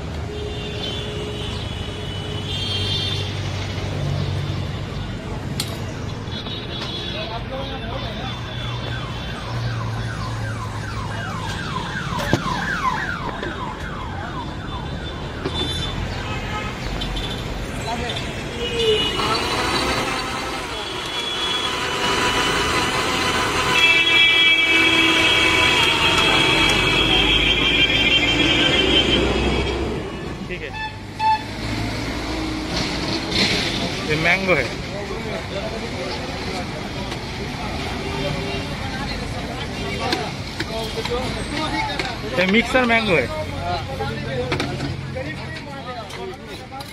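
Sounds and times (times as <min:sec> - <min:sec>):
street traffic rumble: 0:00.0 - 0:46.9
electronic siren wailing: 0:08.8 - 0:15.4
car horn beeps: 0:18.2 - 0:29.8, 0:30.7 - 0:31.5
blender whining: 0:19.1 - 0:26.8.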